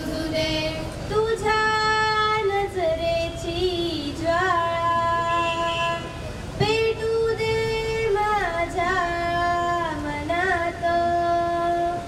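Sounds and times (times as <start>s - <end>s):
girl singing into microphone: 0.0s - 12.0s.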